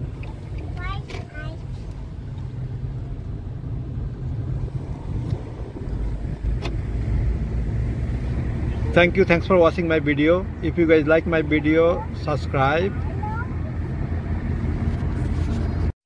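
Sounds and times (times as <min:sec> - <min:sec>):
car engine and tyre rumble: 0:00.0 - 0:16.0.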